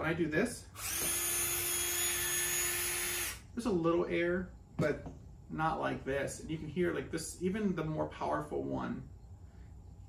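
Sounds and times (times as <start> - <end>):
cordless drill motor whine: 0.8 - 3.5.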